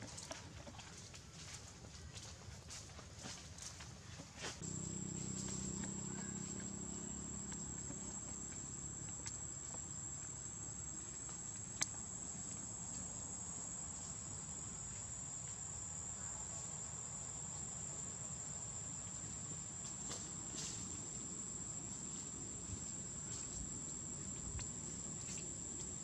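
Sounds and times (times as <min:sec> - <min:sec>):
insects droning: 0:03.2 - 0:26.0.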